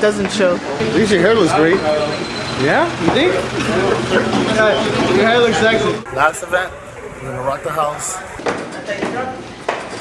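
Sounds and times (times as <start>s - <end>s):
indistinct voices talking: 0.7s - 8.4s.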